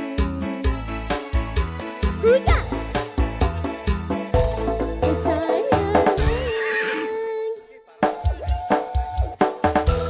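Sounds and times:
drums: 0.0s - 10.0s.

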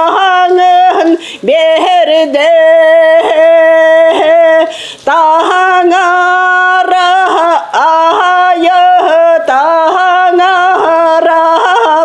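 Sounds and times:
woman singing unaccompanied: 0.0s - 12.0s.

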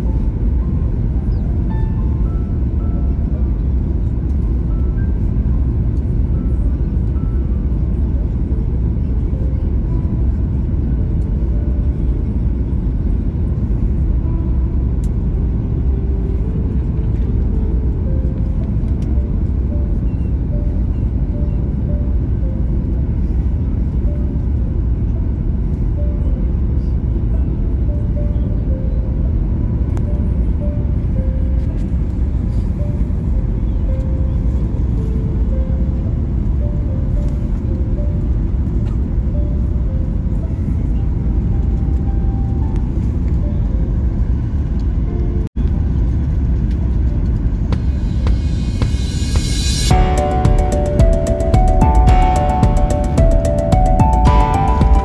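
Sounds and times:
airplane cabin rumble: 0.0s - 55.0s.

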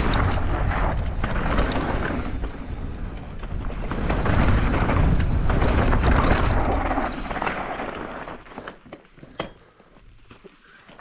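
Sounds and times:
bike clicks and rattles: 0.0s - 11.0s
tyres rolling over stony dirt: 0.0s - 11.0s.

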